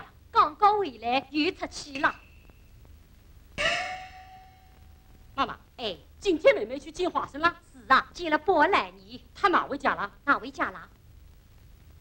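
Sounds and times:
small gong strike: 3.6s - 5.0s.

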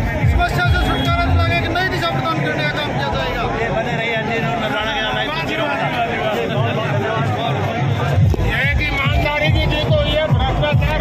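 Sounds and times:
crowd chatter: 0.0s - 11.0s
men talking into a microphone: 0.0s - 11.0s.

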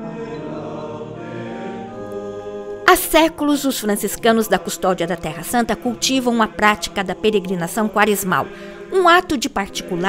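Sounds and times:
men's choir singing a hymn: 0.0s - 10.0s.

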